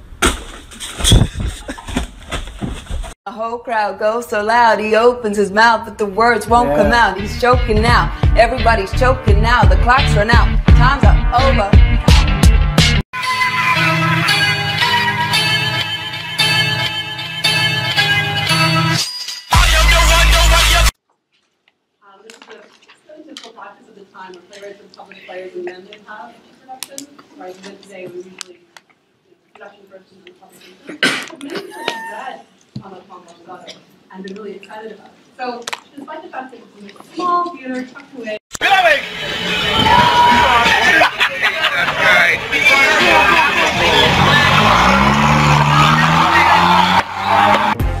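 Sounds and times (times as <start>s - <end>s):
people's voices: 5.7s - 11.6s, 29.6s - 47.8s
faint voice speaking: 6.5s - 7.1s
car engine revving: 42.9s - 47.8s.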